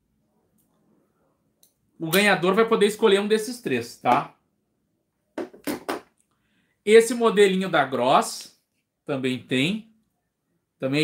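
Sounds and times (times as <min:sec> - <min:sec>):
man speaking: 0:02.0 - 0:04.4, 0:06.9 - 0:09.9, 0:10.8 - 0:11.0.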